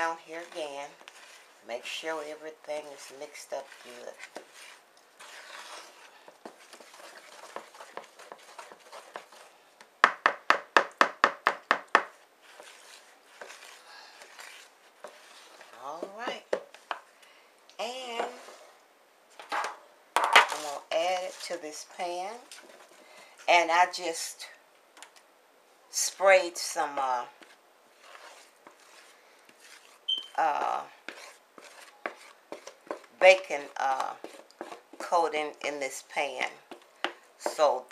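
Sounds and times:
spoon stirring and scraping batter: 0:00.0 - 0:18.8, 0:20.2 - 0:25.2, 0:25.9 - 0:37.9.

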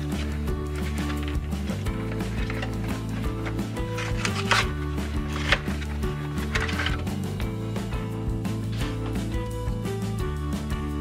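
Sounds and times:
background music: 0:00.0 - 0:11.0
cardboard snapping: 0:02.2 - 0:07.0.

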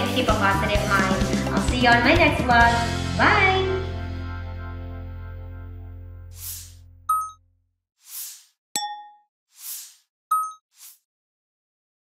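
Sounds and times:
bright ding: 0:07.1 - 0:07.4, 0:08.8 - 0:09.2.

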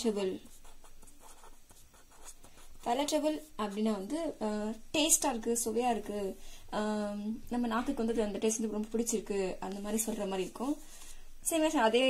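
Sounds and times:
pen scratching on paper: 0:00.3 - 0:04.0.

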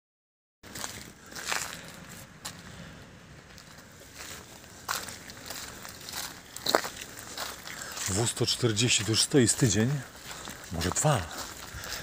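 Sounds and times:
footsteps on wet gritty pavement: 0:00.6 - 0:12.0.

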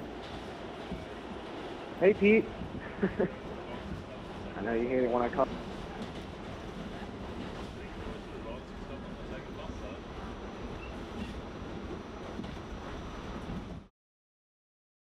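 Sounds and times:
subway car rumble and hiss: 0:00.0 - 0:13.9.

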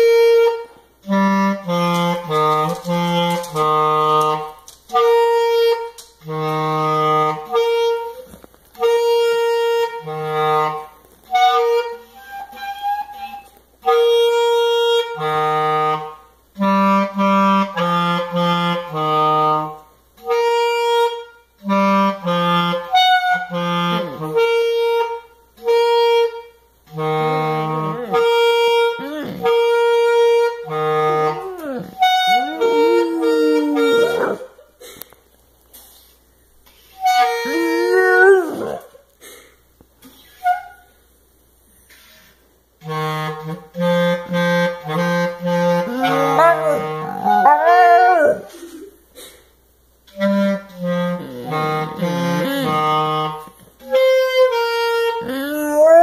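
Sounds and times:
clarinet melody: 0:00.0 - 0:34.7, 0:36.8 - 0:38.9, 0:42.8 - 0:49.0, 0:50.1 - 0:56.0
dog howling: 0:27.6 - 0:28.4, 0:29.0 - 0:29.6, 0:31.0 - 0:34.6, 0:37.3 - 0:39.0, 0:45.8 - 0:48.9, 0:55.2 - 0:56.0.

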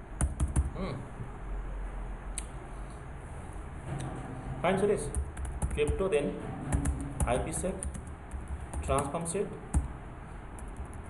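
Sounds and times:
computer keyboard keystrokes: 0:00.2 - 0:00.7, 0:06.7 - 0:09.9, 0:10.5 - 0:11.0.

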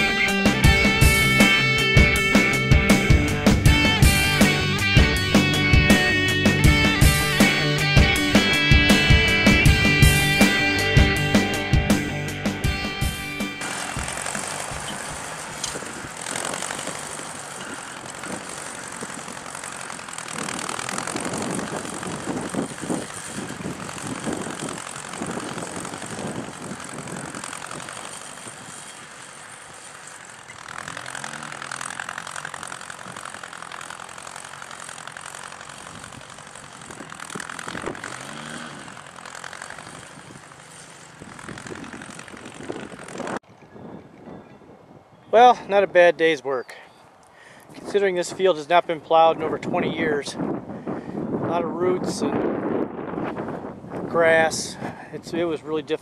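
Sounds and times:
tractor engine running under load: 0:00.0 - 0:44.4, 0:47.2 - 0:56.0.

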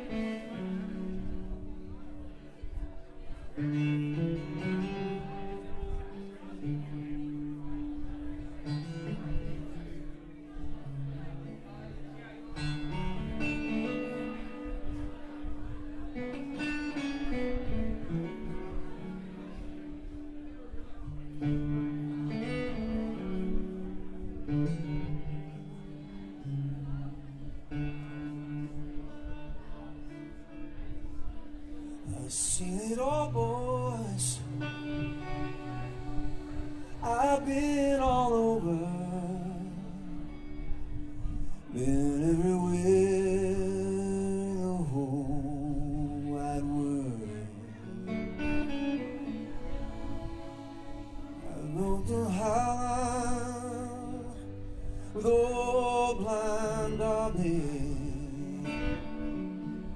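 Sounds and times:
strummed acoustic guitar: 0:00.0 - 0:59.9.

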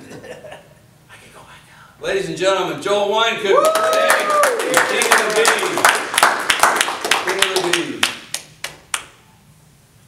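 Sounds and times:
people clapping: 0:03.6 - 0:09.2
man talking: 0:04.7 - 0:05.9, 0:07.2 - 0:08.1.

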